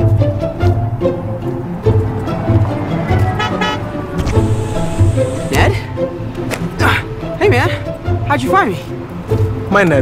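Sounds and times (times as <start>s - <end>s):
background music: 0.0s - 10.0s
car horn double toot: 3.2s - 3.9s.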